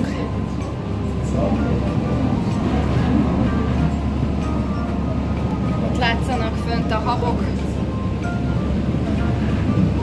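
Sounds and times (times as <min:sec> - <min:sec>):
boat engine rumbling: 0:00.0 - 0:10.0
water rushing along hull: 0:00.0 - 0:10.0.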